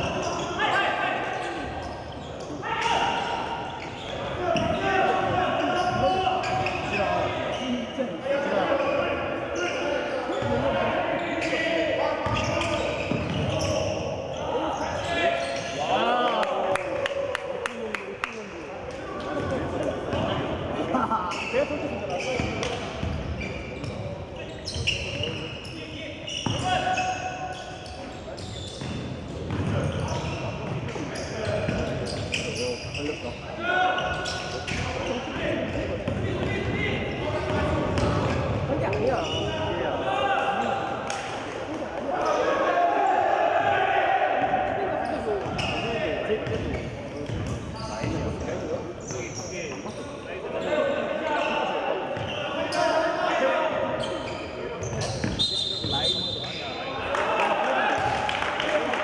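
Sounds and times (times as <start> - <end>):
basketball bouncing on wooden court: 28.8 - 30.8, 46.4 - 48.2
players shouting: 42.0 - 45.8.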